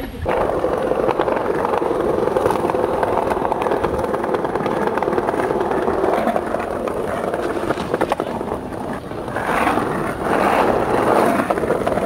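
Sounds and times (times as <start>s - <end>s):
skateboard wheels rolling on pavement: 0.0s - 12.0s.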